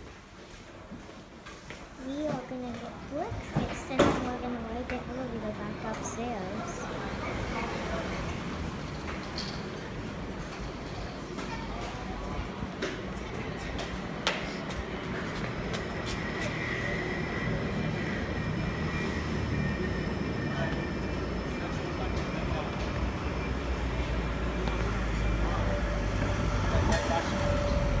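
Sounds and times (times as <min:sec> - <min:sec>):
city street traffic rumble: 0:00.0 - 0:28.0.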